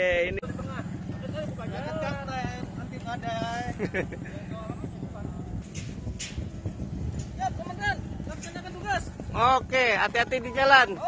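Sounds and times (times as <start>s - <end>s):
motor scooter engine rumbling: 0.0s - 11.0s.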